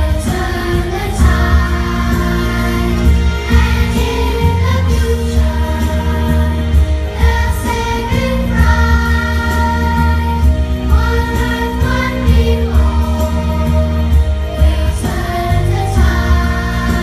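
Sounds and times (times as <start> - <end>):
children singing together: 0.0 - 17.0
music with deep bass line: 0.0 - 17.0.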